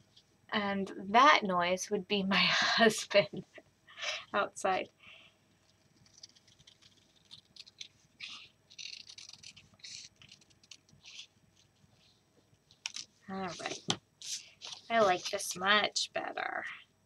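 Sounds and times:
scissors snipping paper: 6.0 - 11.3.

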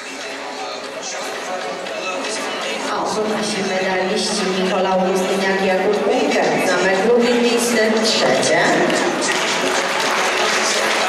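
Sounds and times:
voices: 0.0 - 11.0
audience applause: 8.8 - 11.0.

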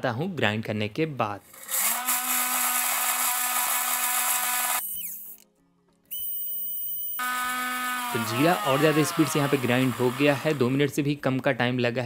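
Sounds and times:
mixer grinder motor whine: 1.6 - 4.8, 7.1 - 10.9.

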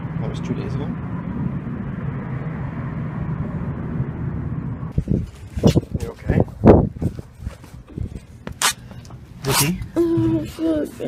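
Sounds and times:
low engine rumble: 0.0 - 11.0.

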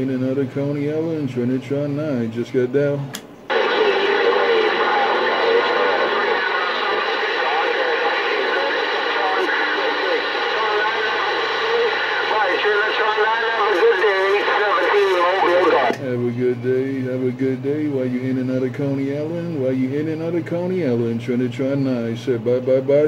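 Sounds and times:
voice over radio speaker: 3.5 - 23.0.

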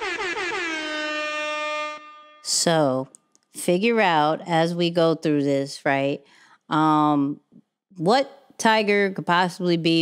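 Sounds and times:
warbling brassy air horn: 0.0 - 2.7.

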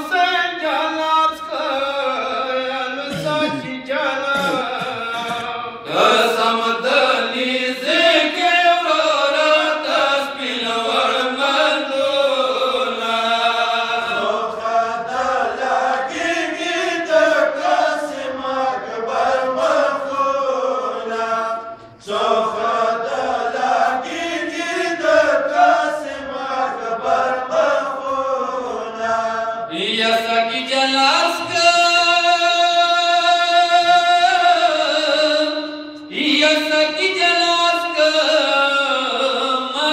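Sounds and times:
men chanting a lament: 0.0 - 39.9.

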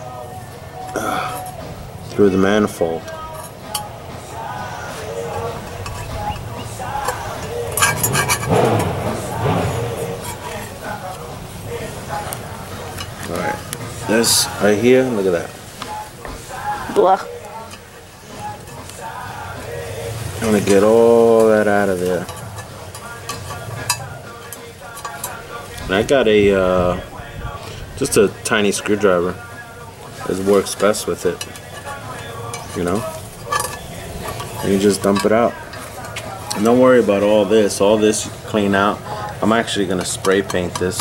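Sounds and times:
indistinct voices: 0.0 - 41.0
screwdriver scraping metal: 4.6 - 11.2, 17.3 - 26.2, 30.2 - 41.0.

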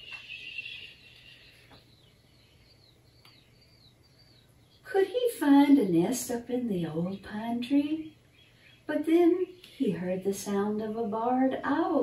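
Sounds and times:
faint high chirps: 0.0 - 5.0.

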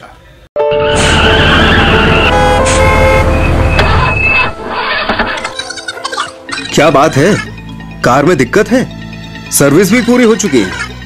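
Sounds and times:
car horn changing pitch: 0.6 - 5.5.

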